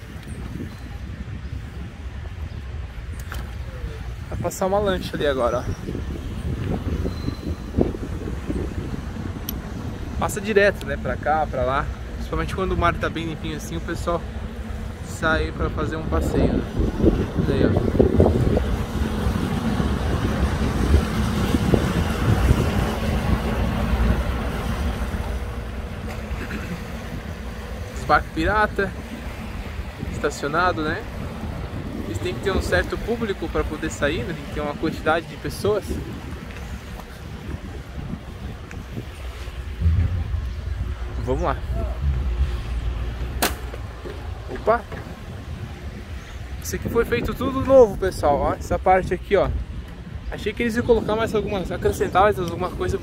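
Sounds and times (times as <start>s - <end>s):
bow wave wash: 0.0s - 46.7s
boat engines running: 0.0s - 53.0s
wind buffeting microphone: 0.0s - 53.0s.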